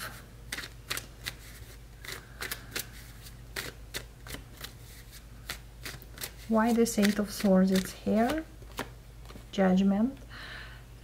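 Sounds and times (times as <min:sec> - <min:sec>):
cards being shuffled: 0:00.0 - 0:09.5.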